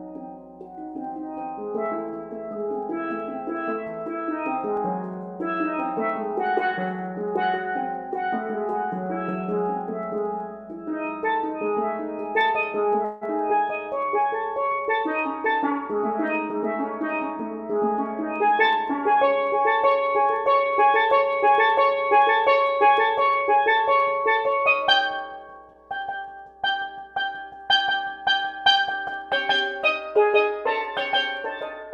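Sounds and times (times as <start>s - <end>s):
steel pans played with mallets: 0.0s - 31.9s.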